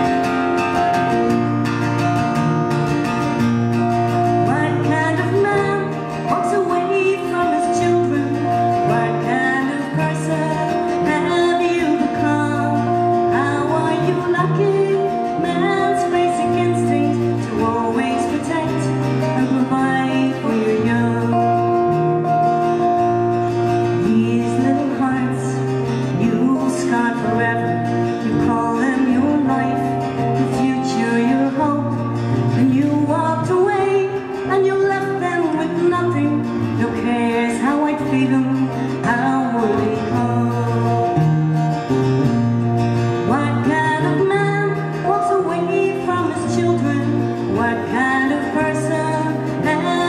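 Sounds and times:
two guitars strummed and picked: 0:00.0 - 0:50.0
woman singing: 0:03.3 - 0:41.8, 0:43.0 - 0:50.0.

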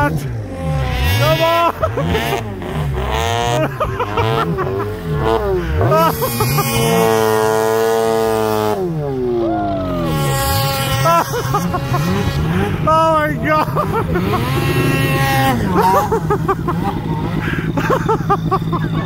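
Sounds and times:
snowmobile engine revving: 0:00.0 - 0:19.0.

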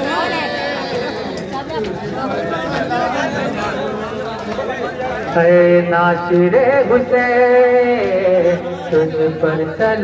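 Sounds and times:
crowd of men talking: 0:00.0 - 0:10.0.

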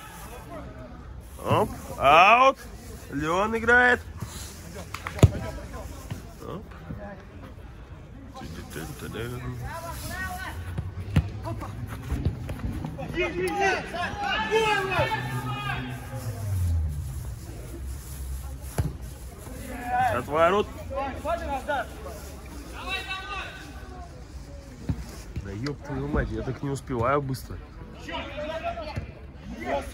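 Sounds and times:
ball being kicked: 0:10.7 - 0:11.5
footballers shouting: 0:12.9 - 0:16.5.

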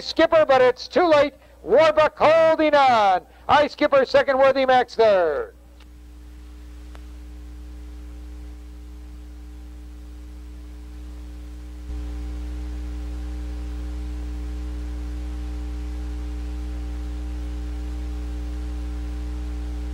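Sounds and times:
electrical hum with buzzing: 0:00.0 - 0:19.9.

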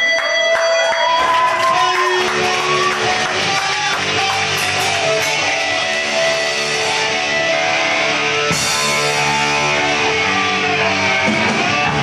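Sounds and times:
loud electric guitar chords: 0:00.0 - 0:12.0
punk band playing live: 0:00.0 - 0:12.0.

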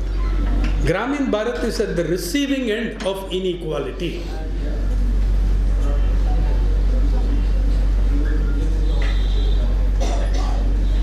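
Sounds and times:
loud low hum: 0:00.0 - 0:11.0
faint voices: 0:04.0 - 0:11.0.

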